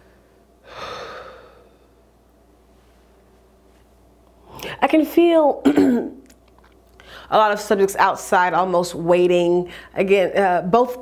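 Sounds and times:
woman breathing: 0.0s - 2.1s, 7.0s - 7.3s, 9.7s - 10.0s.

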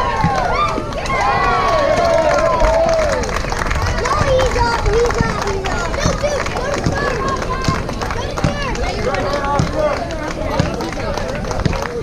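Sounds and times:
children chattering and calling: 3.7s - 12.0s.

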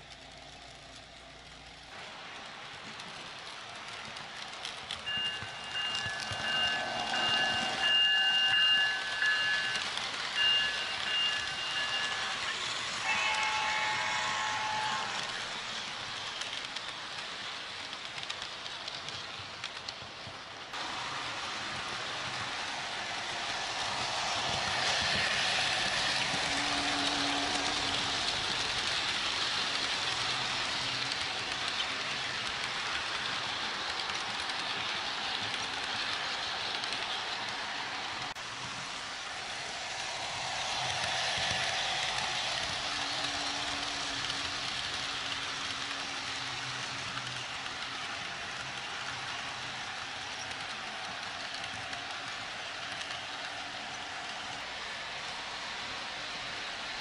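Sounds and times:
model train rolling hiss: 0.0s - 57.0s.

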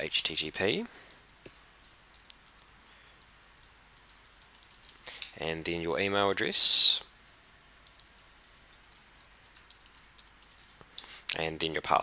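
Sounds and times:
computer keyboard typing: 1.0s - 5.3s, 7.2s - 10.7s.

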